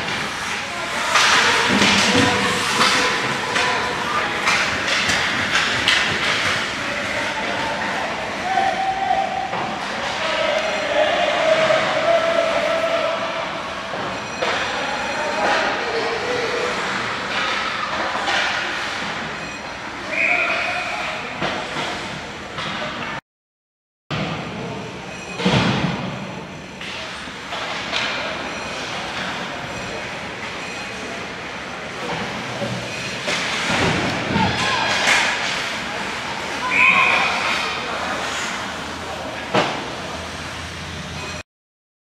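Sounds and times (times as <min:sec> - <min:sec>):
hockey sticks and puck clacking: 0:00.0 - 0:08.6, 0:13.9 - 0:23.0, 0:26.8 - 0:41.2
skates scraping ice: 0:00.0 - 0:08.7, 0:31.9 - 0:41.2
referee whistle: 0:20.0 - 0:21.0, 0:36.6 - 0:37.4.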